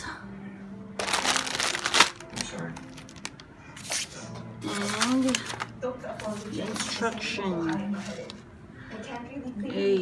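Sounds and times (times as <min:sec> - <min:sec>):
plastic bag crinkling: 0:01.0 - 0:03.5.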